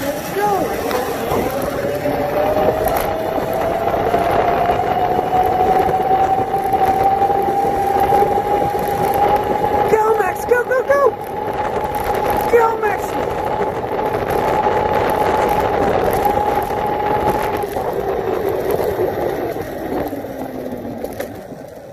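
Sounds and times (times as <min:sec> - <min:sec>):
electric scooter motor whine: 0:00.0 - 0:21.9
tyre and wind noise: 0:00.0 - 0:21.9.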